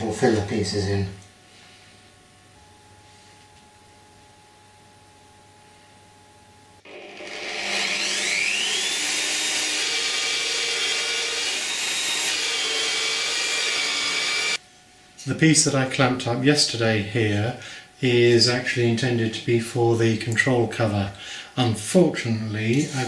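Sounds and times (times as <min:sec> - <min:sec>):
drill bit boring into wood: 0:06.9 - 0:14.6
drill press whining: 0:06.9 - 0:14.6.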